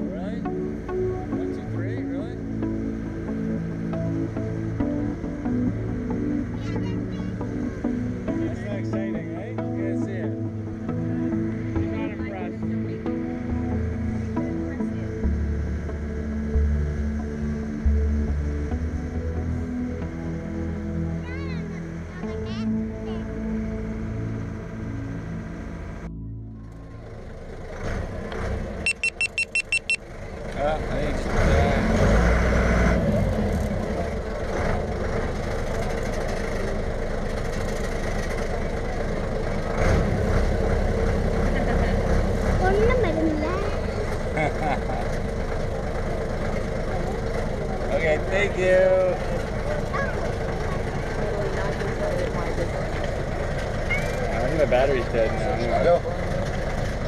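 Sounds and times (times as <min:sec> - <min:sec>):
music: 0:00.0 - 0:27.4, 0:40.4 - 0:44.6
ferry engine running: 0:00.0 - 0:57.0
passengers chatting: 0:06.4 - 0:15.5, 0:41.0 - 0:57.0
quick beeps: 0:28.8 - 0:30.0.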